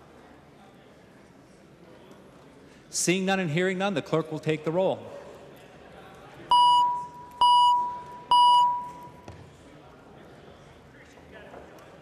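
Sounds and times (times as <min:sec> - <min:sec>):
electronic chime tones: 0:06.5 - 0:09.1.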